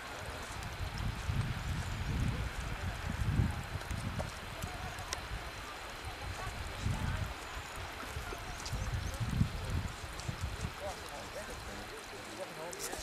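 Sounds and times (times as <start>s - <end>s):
wind buffeting microphone: 0.0s - 12.0s
steady rushing hiss: 0.0s - 13.0s.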